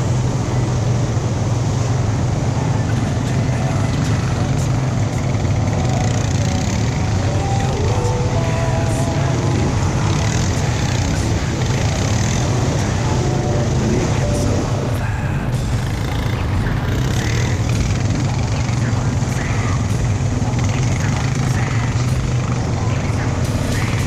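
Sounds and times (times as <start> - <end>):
quad bike engine droning: 0.0 - 24.0.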